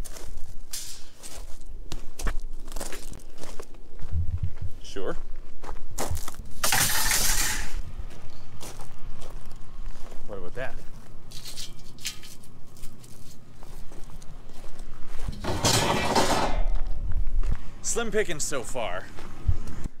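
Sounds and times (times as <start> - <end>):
footsteps on gravel: 0.0 - 19.8
loud rustling scrape: 6.6 - 7.8, 15.3 - 16.7.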